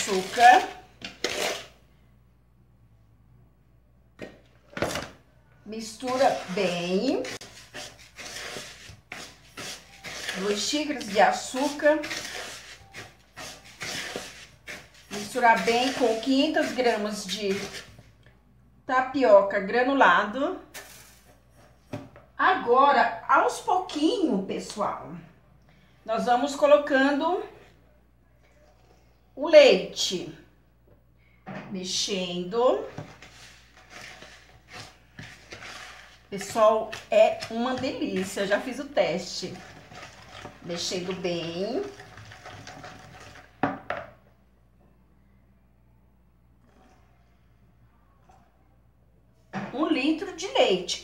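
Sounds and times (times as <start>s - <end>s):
spoon scraping plastic bowl: 0.0s - 1.8s, 5.8s - 18.1s, 32.8s - 43.6s
milk pouring: 41.8s - 43.7s.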